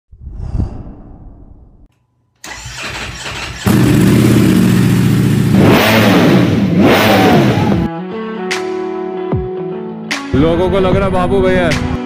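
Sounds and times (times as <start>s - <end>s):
engine starting and revving: 2.4s - 7.9s.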